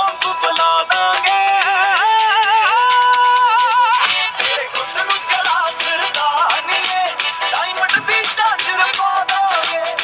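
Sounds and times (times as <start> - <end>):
percussion hits: 6.8 - 9.1.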